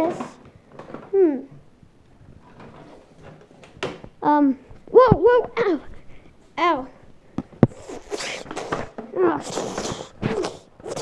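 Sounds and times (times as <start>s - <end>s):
faint rustling and shuffling: 0.0s - 11.0s.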